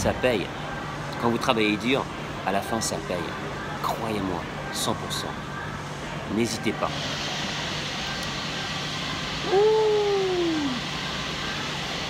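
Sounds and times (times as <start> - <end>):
man humming: 9.5 - 10.8.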